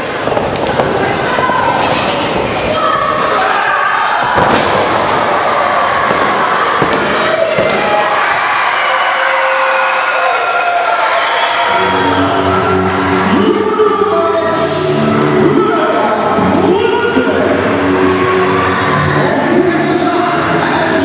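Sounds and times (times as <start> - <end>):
crowd noise and shouting: 0.0 - 21.0
music: 11.4 - 21.0.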